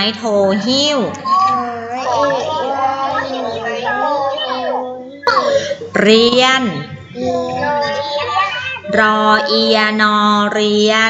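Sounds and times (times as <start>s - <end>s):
children and woman chanting: 1.3s - 5.3s, 7.2s - 9.7s.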